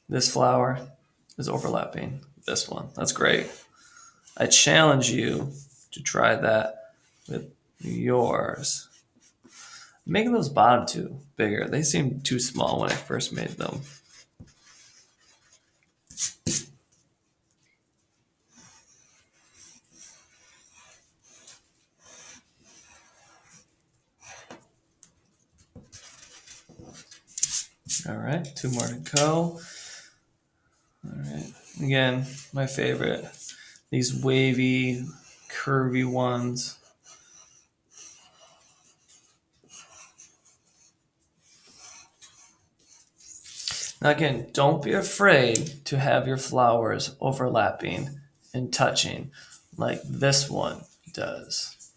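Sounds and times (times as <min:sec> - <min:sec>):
pencil scratching on paper: 0:06.8 - 0:10.0, 0:12.9 - 0:16.8, 0:18.4 - 0:24.7, 0:25.3 - 0:30.2, 0:31.0 - 0:44.0
pencil rubbing on paper: 0:06.9 - 0:10.0, 0:13.3 - 0:16.8, 0:18.4 - 0:24.6, 0:25.8 - 0:30.2, 0:31.2 - 0:44.0.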